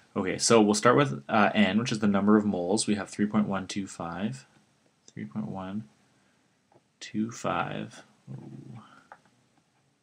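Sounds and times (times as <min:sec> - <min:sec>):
quiet low vocal sound: 0:07.0 - 0:09.2.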